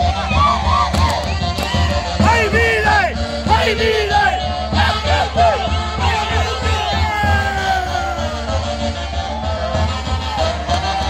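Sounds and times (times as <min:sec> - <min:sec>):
low drum beats: 0:00.0 - 0:08.7
sliding folk melody: 0:00.0 - 0:11.0.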